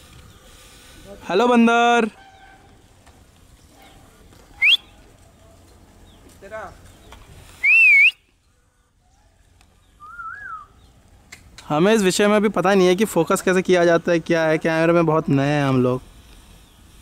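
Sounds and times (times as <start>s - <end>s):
person whistling: 7.6s - 8.2s, 10.0s - 10.7s.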